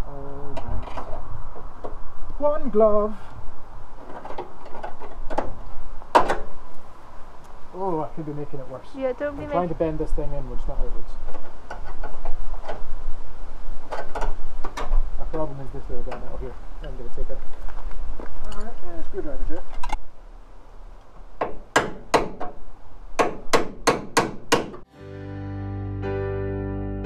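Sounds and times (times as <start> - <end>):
wind rumble on microphone: 0.1 - 7.8.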